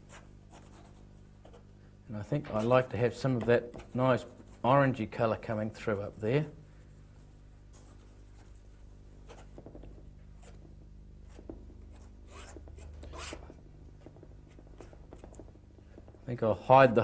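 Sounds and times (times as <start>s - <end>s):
steady low hum: 0.0s - 17.0s
palette knife scraping canvas: 11.3s - 13.5s.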